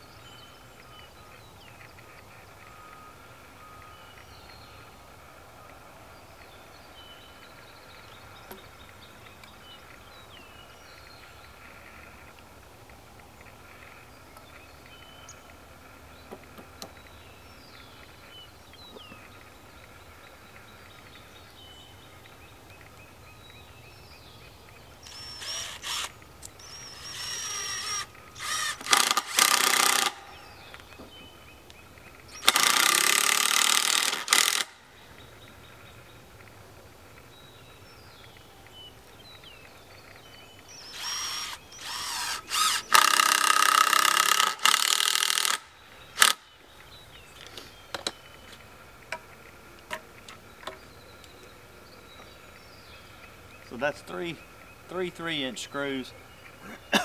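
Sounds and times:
cordless drill driving screws: 25.0 - 30.2, 32.4 - 34.7, 40.8 - 45.6, 46.2 - 46.4.

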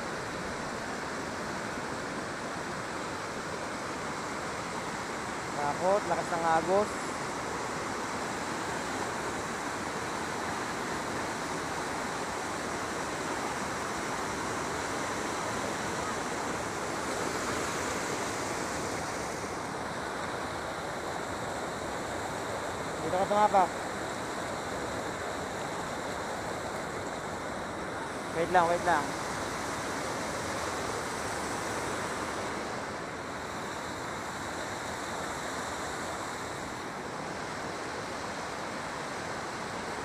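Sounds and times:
river water pouring over weir: 0.0 - 40.0.

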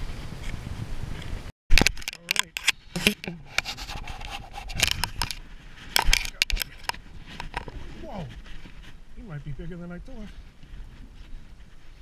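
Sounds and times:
sharp clicks and knocks: 1.7 - 5.4, 6.0 - 7.7
rubbing and scraping handling noise: 1.7 - 12.0.

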